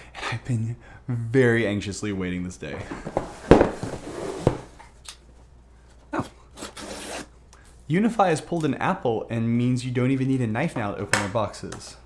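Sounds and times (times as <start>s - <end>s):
box thumping on wooden table: 3.0s - 4.6s.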